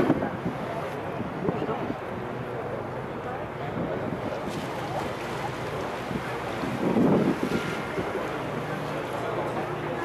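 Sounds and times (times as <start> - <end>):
wind buffeting microphone: 0.0 - 2.6, 3.6 - 10.0
boat engine hum: 0.0 - 10.0
water wash: 0.0 - 10.0.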